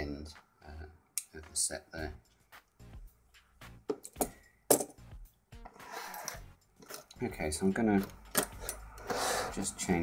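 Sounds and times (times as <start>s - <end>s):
lock picks sliding rustle: 5.8s - 7.2s.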